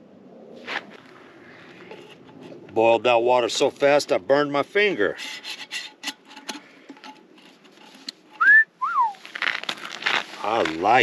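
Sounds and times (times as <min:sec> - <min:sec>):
light clicks and rubbing: 0:05.0 - 0:08.5
wolf whistle: 0:08.4 - 0:09.2.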